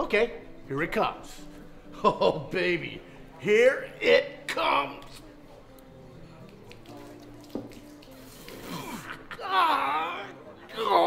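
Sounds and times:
urine streaming and spattering: 6.6s - 9.2s
man crying out: 8.7s - 11.0s.

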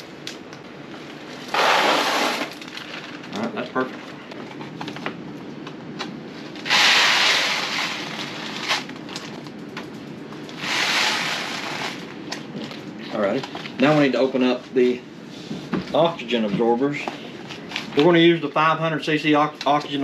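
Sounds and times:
foil bag crinkling: 1.4s - 4.1s, 7.3s - 9.5s.

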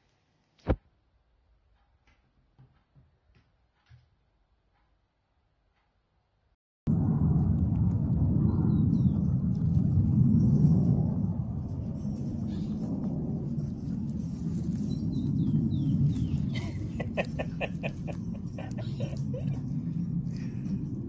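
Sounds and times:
low uneven rumble: 6.9s - 21.0s.

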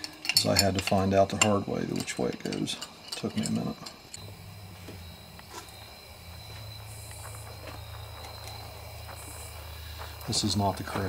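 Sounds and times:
metal parts clicking: 0.0s - 4.3s
faint high whine: 0.0s - 11.0s
low hum: 2.8s - 11.0s.

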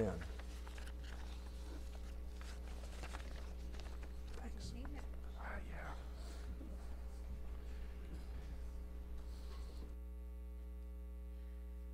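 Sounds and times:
steady low hum: 0.0s - 11.9s
soft rustle: 0.1s - 9.9s.

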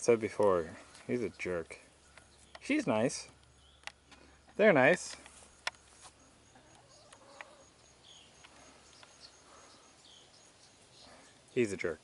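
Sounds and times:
insect chirping: 0.5s - 12.0s.

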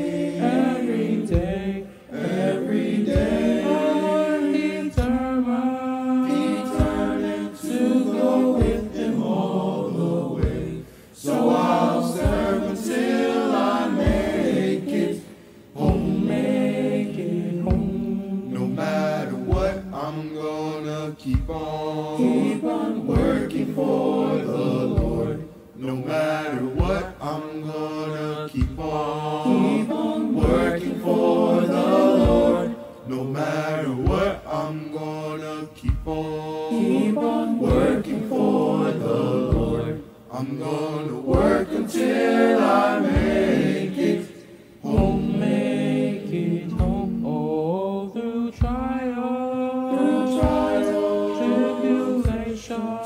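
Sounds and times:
low thump keeping time: 0.0s - 5.6s, 6.2s - 15.2s, 15.8s - 20.1s, 21.2s - 27.3s, 28.5s - 32.8s, 35.4s - 40.0s, 41.1s - 44.3s, 44.9s - 47.4s, 49.9s - 52.6s
youth choir singing gospel: 0.0s - 53.0s.

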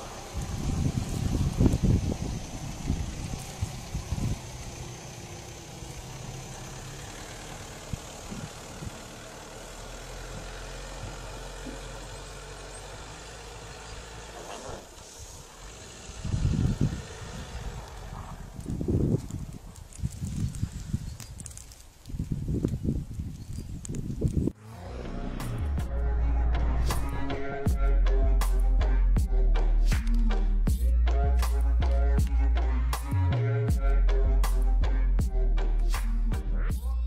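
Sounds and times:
car engine rumbling in snow: 0.0s - 37.0s.

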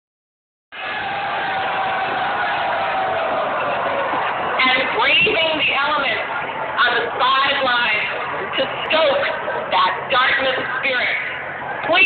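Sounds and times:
crowd cheering and shouting: 0.7s - 12.0s.

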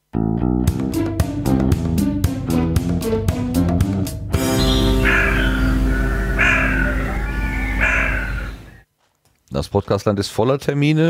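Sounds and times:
jingle music with held chord: 4.4s - 7.6s
loud call-like sounds: 4.4s - 8.8s.

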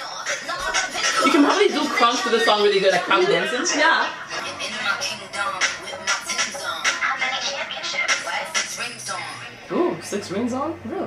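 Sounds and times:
woman rapping over a beat: 0.0s - 9.7s.

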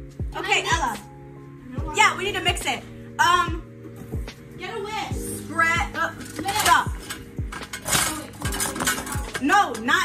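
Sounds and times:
background music with beat: 0.0s - 10.0s
utensils and bowl clattering: 6.0s - 10.0s.

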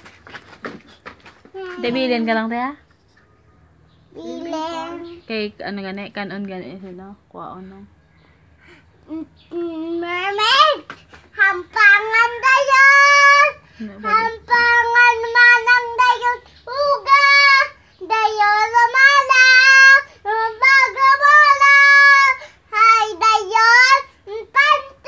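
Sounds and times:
girl singing unaccompanied: 1.5s - 2.1s, 4.1s - 5.3s, 9.0s - 25.0s.

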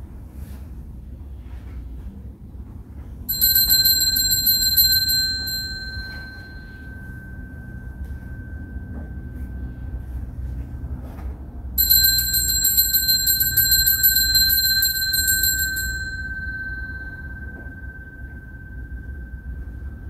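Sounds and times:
altar bell shaken rapidly: 3.3s - 9.4s, 11.8s - 20.0s
faint high whine: 5.1s - 12.3s, 15.0s - 20.0s.

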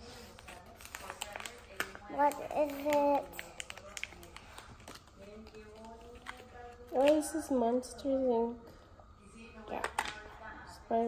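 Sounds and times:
plastic wrapper crinkling: 0.1s - 7.3s
plastic wrapper clicks: 0.9s - 7.1s.

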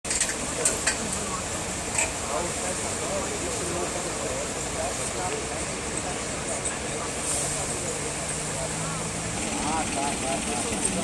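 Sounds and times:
outdoor rumble and hiss: 0.1s - 11.0s
people talking at a distance: 0.1s - 11.0s.

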